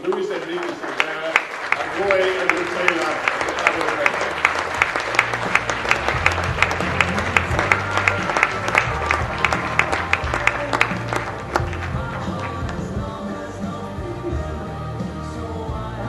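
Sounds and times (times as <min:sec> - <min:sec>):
audience applause: 0:00.0 - 0:13.2
music over sound system: 0:04.2 - 0:16.0.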